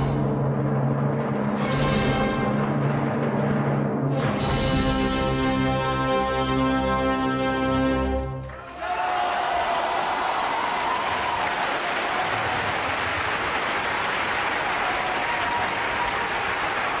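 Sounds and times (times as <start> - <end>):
audience applauding: 8.4 - 17.0.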